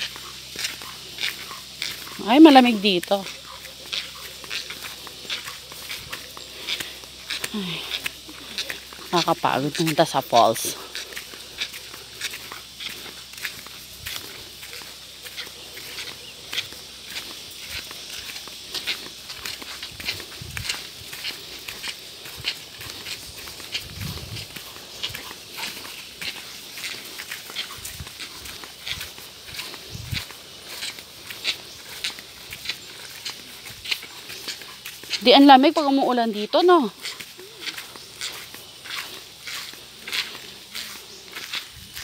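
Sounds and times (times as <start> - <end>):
footsteps in sandals on dirt: 0.0 - 42.0.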